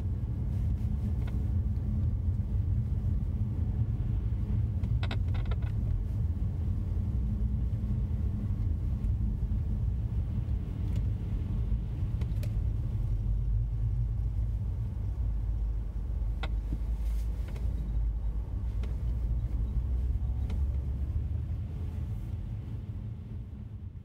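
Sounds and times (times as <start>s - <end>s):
engine and tyres rumbling: 0.0s - 24.0s
faint clicks and knocks: 4.8s - 6.0s, 16.2s - 18.1s.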